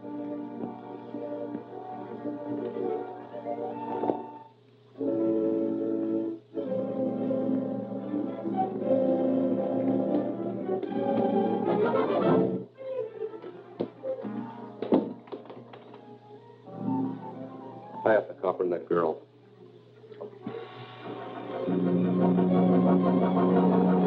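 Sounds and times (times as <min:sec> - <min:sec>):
orchestral film score with brass: 0:00.0 - 0:12.7, 0:21.1 - 0:24.0.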